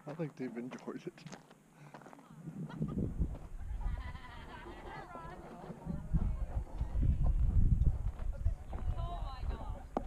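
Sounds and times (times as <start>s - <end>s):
gusty wind on microphone: 2.4s - 10.0s.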